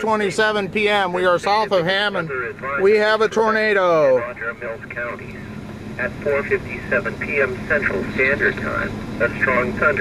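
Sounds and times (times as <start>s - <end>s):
man speaking: 0.0s - 10.0s
radio broadcast voice: 0.0s - 10.0s.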